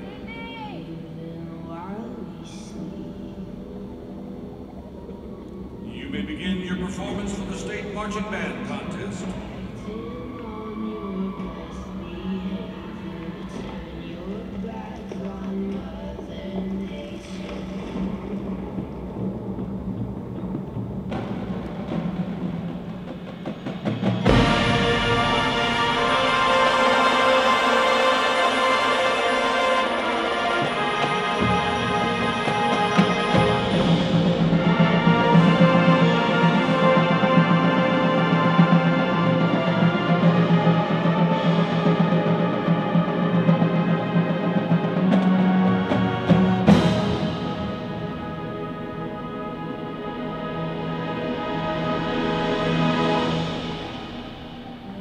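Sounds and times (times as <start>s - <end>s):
percussion: 0.0s - 55.0s
full marching band with brass: 17.2s - 55.0s.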